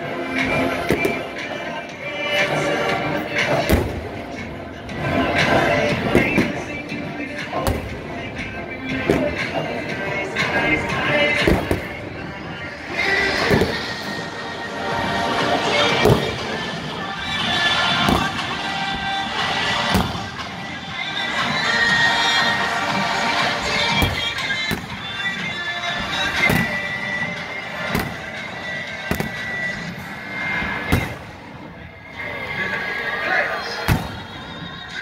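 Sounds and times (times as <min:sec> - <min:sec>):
fireworks bangs echoing: 0:00.6 - 0:01.6, 0:02.9 - 0:14.5, 0:15.3 - 0:32.0, 0:33.8 - 0:34.7
marching band playing: 0:03.3 - 0:31.7.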